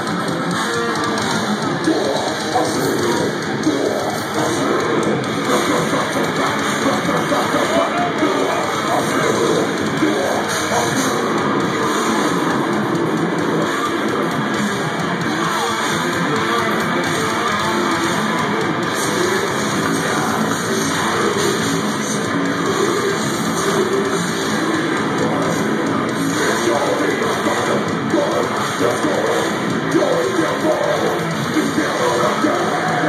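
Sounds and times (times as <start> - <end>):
death metal band playing live: 0.0 - 33.0.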